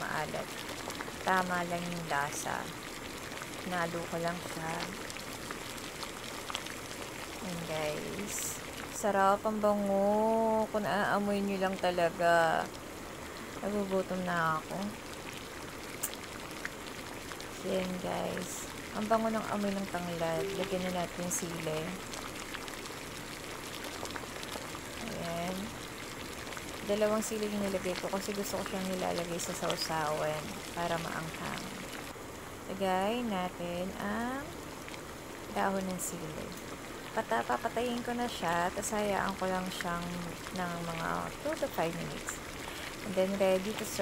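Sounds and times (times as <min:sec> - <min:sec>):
broth boiling and bubbling: 0:00.0 - 0:44.0.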